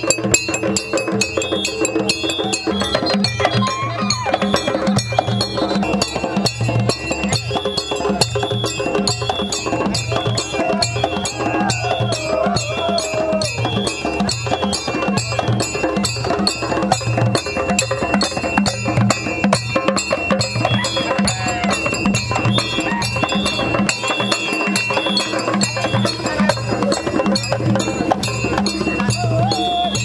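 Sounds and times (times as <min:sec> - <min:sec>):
hand drums: 0:00.0 - 0:30.0
struck iron instruments ringing: 0:00.0 - 0:30.0.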